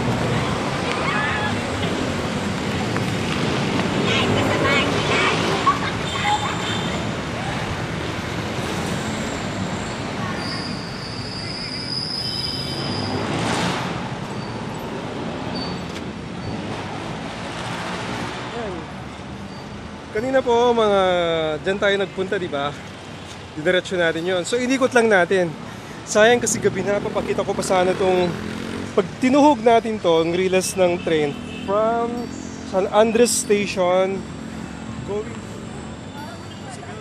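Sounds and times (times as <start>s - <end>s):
road traffic passing: 0.0s - 37.0s.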